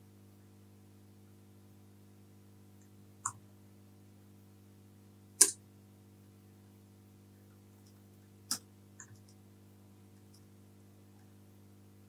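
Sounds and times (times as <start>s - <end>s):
low electrical hum: 0.0s - 12.0s
faint computer clicks: 7.8s - 9.4s.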